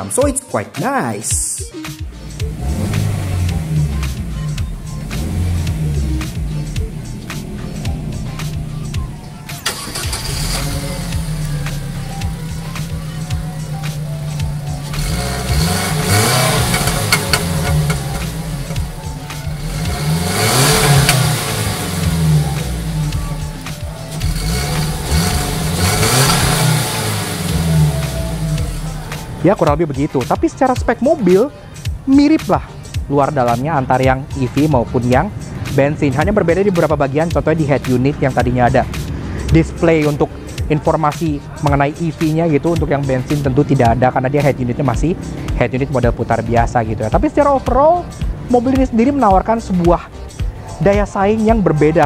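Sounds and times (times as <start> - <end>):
car engine idling and revving: 1.9 - 52.0.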